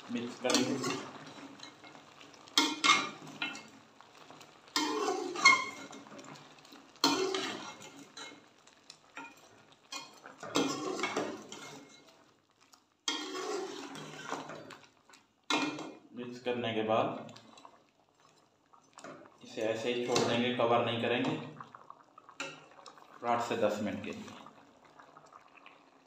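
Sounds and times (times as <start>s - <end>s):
spoon scraping in metal pot: 0.4s - 1.9s, 4.8s - 6.1s, 7.0s - 8.4s, 9.2s - 12.1s, 13.1s - 14.8s.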